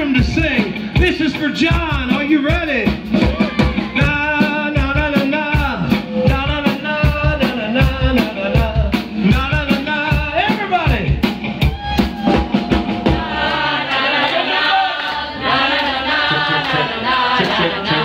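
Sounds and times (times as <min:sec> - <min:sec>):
electric bass: 0:00.0 - 0:13.4
guitar: 0:00.0 - 0:15.6
drum kit beat: 0:00.0 - 0:18.0
man singing: 0:03.9 - 0:11.0, 0:16.3 - 0:18.0.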